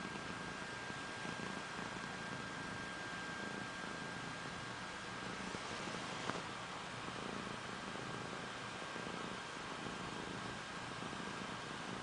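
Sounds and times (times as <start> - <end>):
kitten purring: 0.0 - 12.0.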